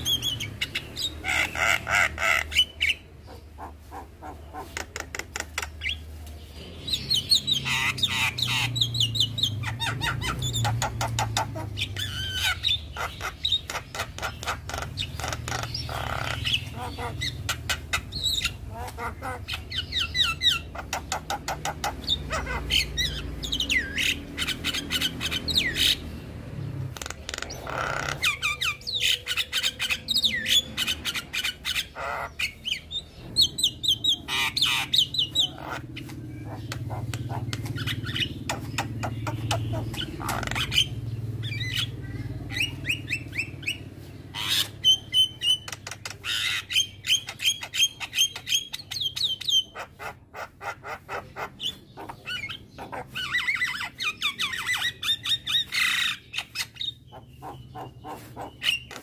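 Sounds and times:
myna bird singing: 0:00.0 - 0:59.0.

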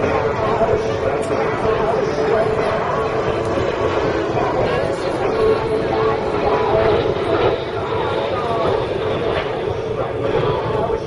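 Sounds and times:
jet engines rumbling: 0:00.0 - 0:11.0
people's voices: 0:00.0 - 0:11.0.

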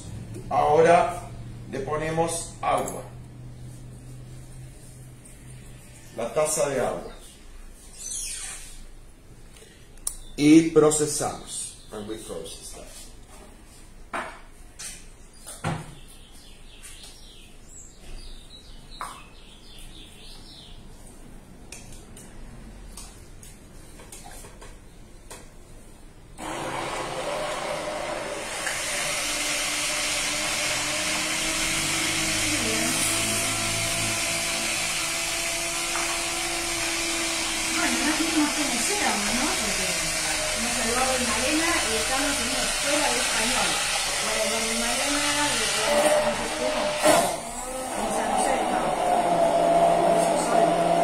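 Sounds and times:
immersion blender motor whine: 0:26.4 - 0:51.0.

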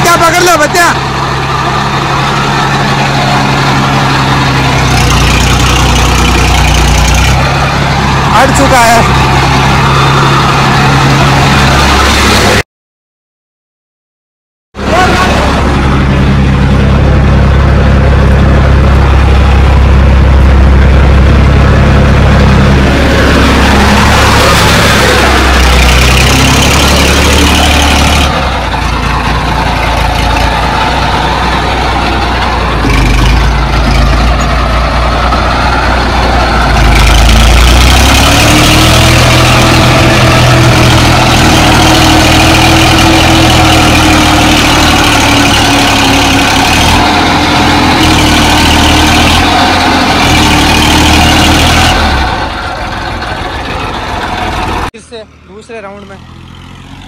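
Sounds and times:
tractor diesel engine running: 0:00.0 - 0:12.6, 0:14.8 - 0:57.0.

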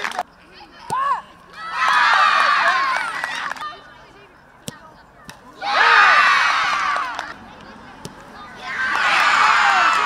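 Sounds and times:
crowd shouting and cheering: 0:00.9 - 0:03.8, 0:05.6 - 0:07.4, 0:08.4 - 0:10.0.

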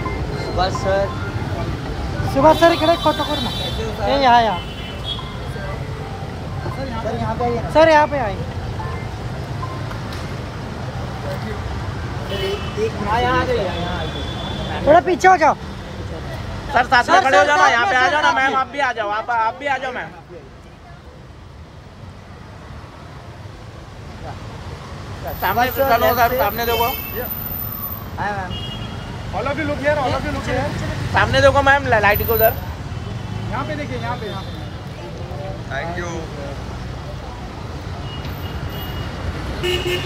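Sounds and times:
traffic rumble: 0:00.0 - 0:40.0
faint crowd voices: 0:29.2 - 0:39.0.

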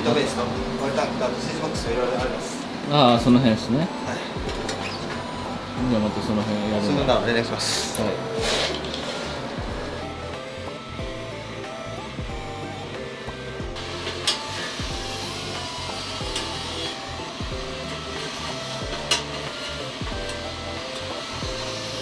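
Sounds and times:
background music with bass line: 0:03.2 - 0:22.0.

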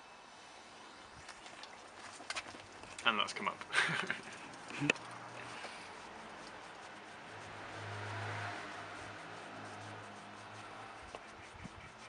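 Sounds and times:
solution fizzing and crackling: 0:01.2 - 0:03.0.

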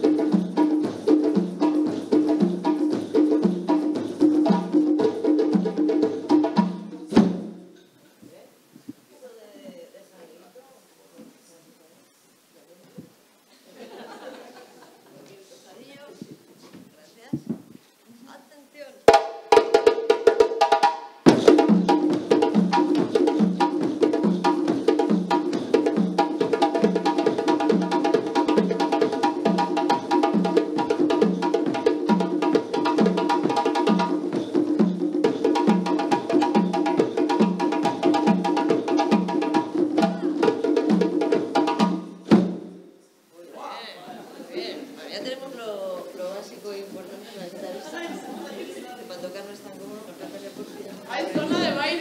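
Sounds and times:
hand drum played: 0:00.0 - 0:07.7, 0:19.1 - 0:42.8
bass drums struck with sticks: 0:00.0 - 0:07.8, 0:21.3 - 0:42.8.

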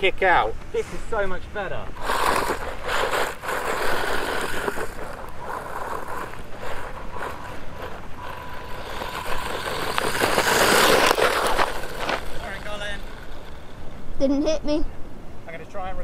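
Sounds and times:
tyres rushing over gravel: 0:01.9 - 0:14.0
electric motor whine: 0:02.0 - 0:14.2.

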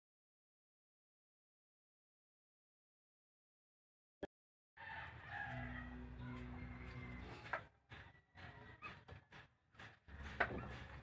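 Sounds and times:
rooster crowing: 0:04.8 - 0:09.2.

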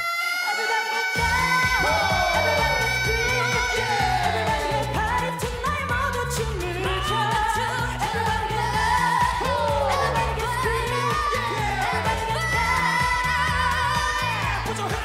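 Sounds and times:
group singing pop song: 0:00.0 - 0:15.0
pop backing track with bass: 0:01.1 - 0:15.0.

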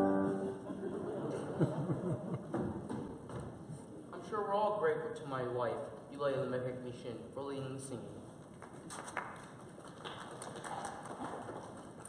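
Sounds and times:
auditorium room noise: 0:00.0 - 0:12.0.

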